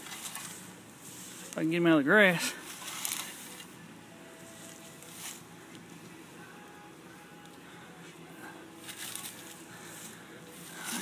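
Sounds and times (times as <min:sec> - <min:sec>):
rake rustling through grass: 0:00.0 - 0:03.7, 0:04.5 - 0:05.4, 0:08.8 - 0:11.0.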